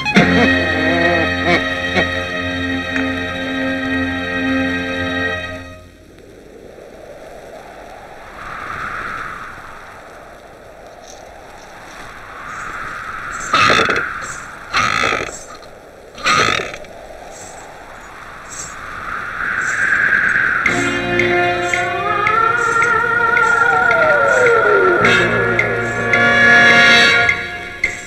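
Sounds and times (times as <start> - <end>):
wind whooshing: 5.8 - 28.0.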